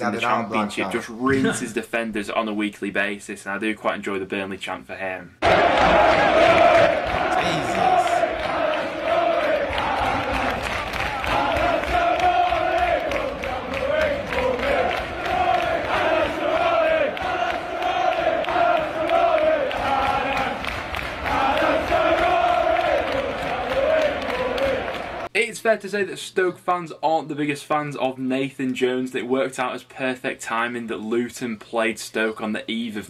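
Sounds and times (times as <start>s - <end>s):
crowd singing a chant: 5.4s - 25.3s.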